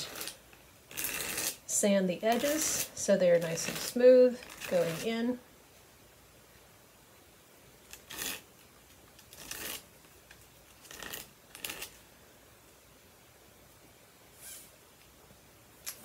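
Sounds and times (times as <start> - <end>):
plastic scraping on sandpaper: 0.0 - 1.6, 2.3 - 5.3, 7.9 - 8.5, 9.2 - 12.0.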